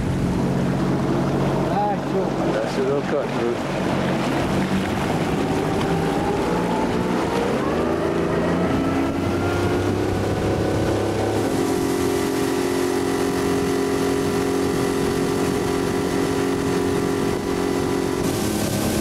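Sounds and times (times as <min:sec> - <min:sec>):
boat motor running: 0:00.0 - 0:19.0.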